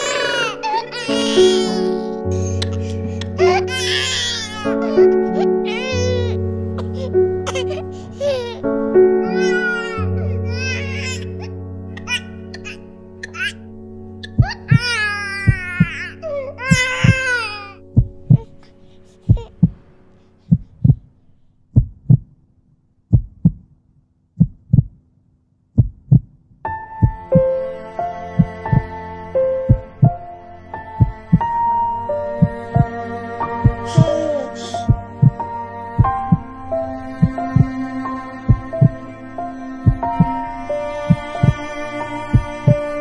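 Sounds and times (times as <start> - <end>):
baby crying: 0.0 - 13.6, 14.2 - 19.8, 33.6 - 35.3
soft music with held notes: 0.0 - 21.6, 26.6 - 43.0
heartbeat double knocks: 17.9 - 18.5, 19.3 - 19.8, 20.5 - 21.1, 21.8 - 22.4, 23.1 - 23.7, 24.4 - 25.0, 25.8 - 26.4, 27.0 - 27.4, 29.7 - 30.2, 34.9 - 35.4, 38.5 - 39.0, 42.4 - 42.6.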